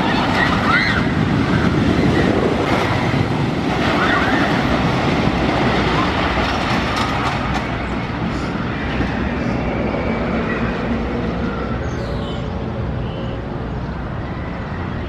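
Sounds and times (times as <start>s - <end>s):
roller coaster train rumbling: 0.0s - 15.0s.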